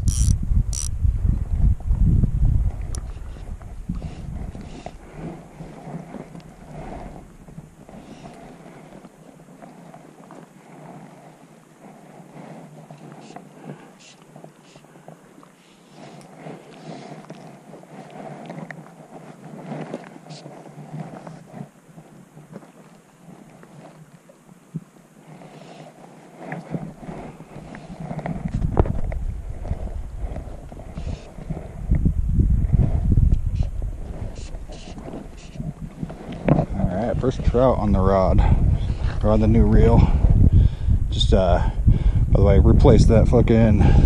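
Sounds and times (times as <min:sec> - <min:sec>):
wind buffeting microphone: 0:00.0 - 0:13.8, 0:26.2 - 0:44.0.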